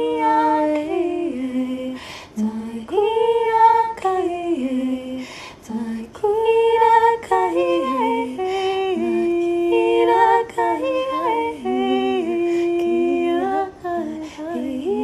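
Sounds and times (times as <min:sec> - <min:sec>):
woman singing wordless vocables: 0:00.0 - 0:15.0.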